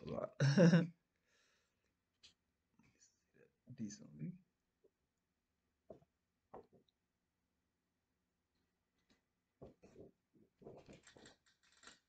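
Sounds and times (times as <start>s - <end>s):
paper rustling and crinkling: 10.6s - 12.0s.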